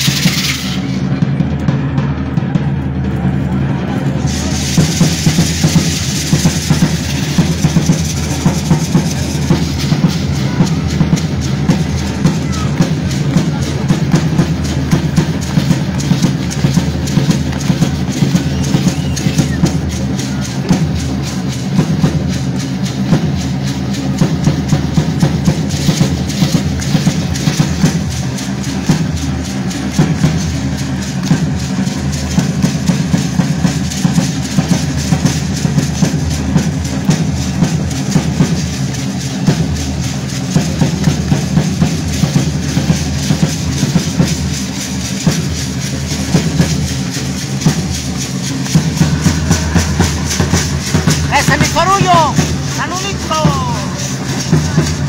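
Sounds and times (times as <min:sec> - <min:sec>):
bass drums and snare drum: 0:00.0 - 0:55.0.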